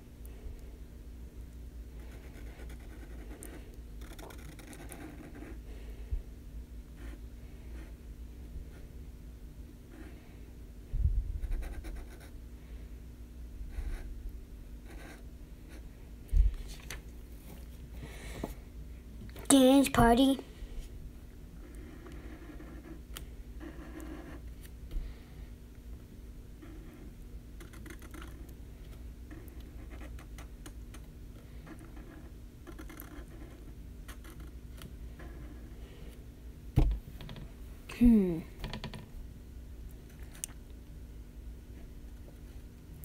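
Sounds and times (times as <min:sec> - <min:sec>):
low steady hum: 0:00.0 - 0:43.0
marker scratching on paper: 0:02.0 - 0:05.6, 0:07.0 - 0:08.0, 0:11.4 - 0:12.3, 0:14.8 - 0:15.8, 0:21.7 - 0:23.0, 0:23.6 - 0:24.4, 0:26.6 - 0:28.4, 0:29.3 - 0:30.5, 0:31.7 - 0:34.5.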